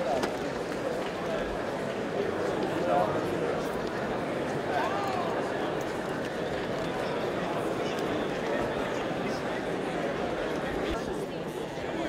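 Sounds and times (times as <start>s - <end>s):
audience chatter: 0.0s - 12.0s.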